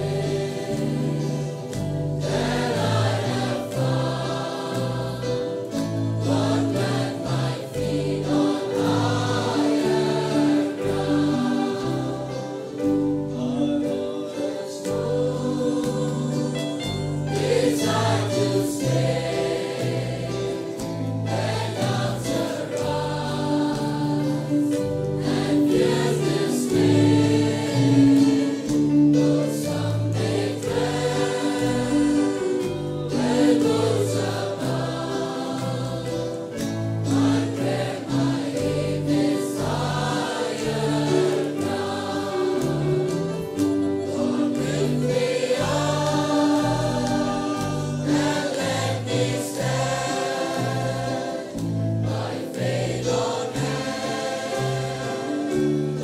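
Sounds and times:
choir singing gospel song: 0:00.0 - 0:56.0.

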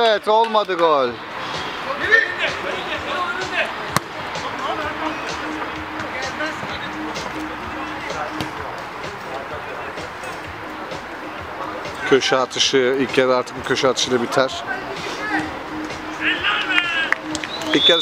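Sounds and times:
players shouting and chatting: 0:00.0 - 0:18.0
ball being kicked: 0:03.9 - 0:04.1.

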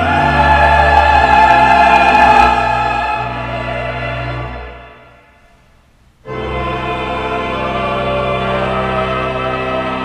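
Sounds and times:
pipe organ chord: 0:00.0 - 0:05.3, 0:06.2 - 0:10.0
church choir singing: 0:00.0 - 0:05.4, 0:06.3 - 0:10.0.

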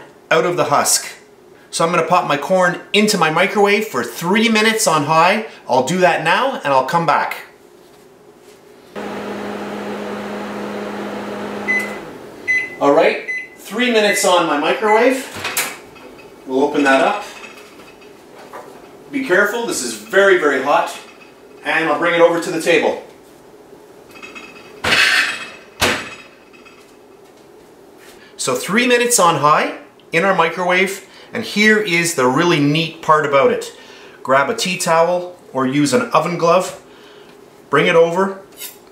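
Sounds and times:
microwave oven humming: 0:09.0 - 0:13.5
short high beep: 0:11.7 - 0:13.5.

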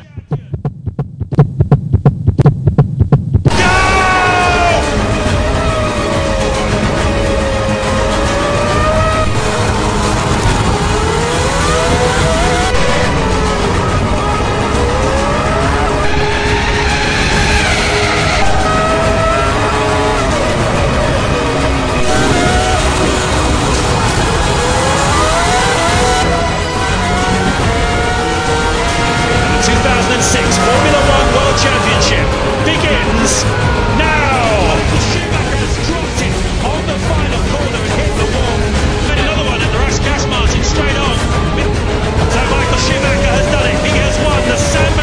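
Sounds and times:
racing car engine accelerating: 0:03.5 - 0:45.0.

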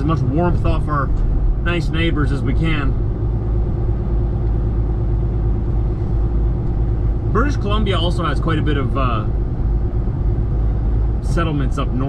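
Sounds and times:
truck diesel engine rumble: 0:00.0 - 0:12.0.

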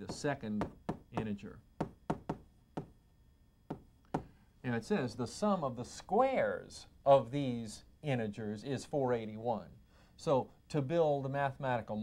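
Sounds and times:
chalk tapping on chalkboard: 0:00.0 - 0:03.0.

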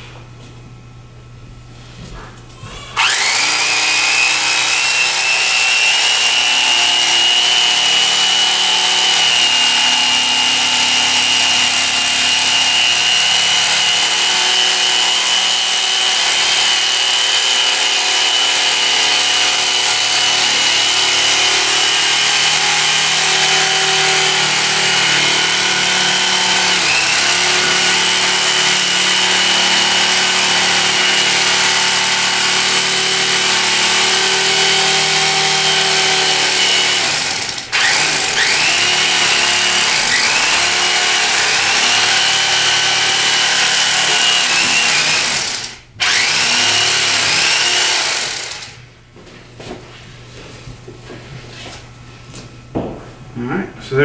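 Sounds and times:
electric carving knife whining: 0:02.6 - 0:48.8
blades sawing through foam: 0:03.0 - 0:48.5.

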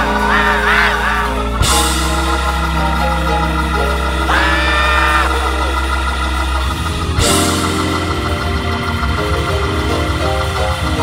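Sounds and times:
person crying out: 0:00.0 - 0:01.5, 0:04.3 - 0:05.6
deep bass note: 0:00.0 - 0:11.0
organ holding sustained chords: 0:00.0 - 0:11.0.

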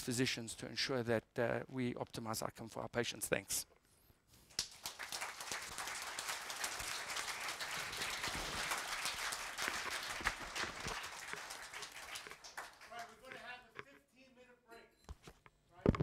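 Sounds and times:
audience applauding: 0:04.5 - 0:13.4.

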